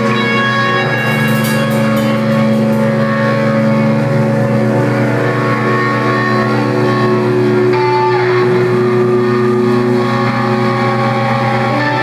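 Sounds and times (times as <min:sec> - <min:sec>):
rock band drone: 0:00.0 - 0:12.0.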